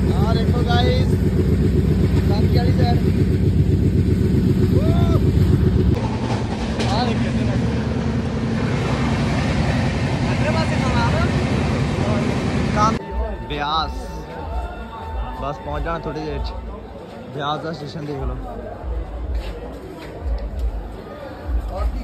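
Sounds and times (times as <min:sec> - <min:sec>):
train wheels rumbling and rattling: 0:05.4 - 0:13.0.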